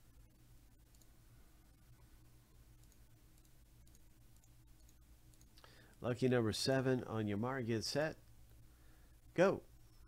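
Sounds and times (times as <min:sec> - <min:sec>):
faint low hum: 0:00.0 - 0:10.0
computer mouse clicks: 0:00.8 - 0:01.2, 0:02.7 - 0:06.0.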